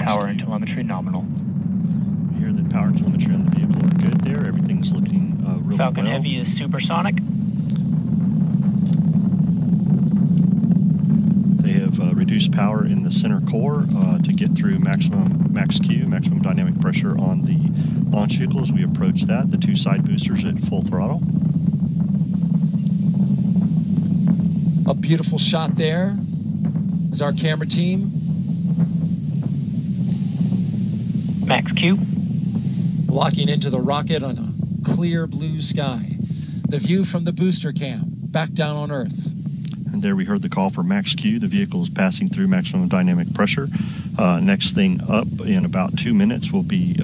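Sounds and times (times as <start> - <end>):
rocket engines rumbling: 0.0 - 47.0.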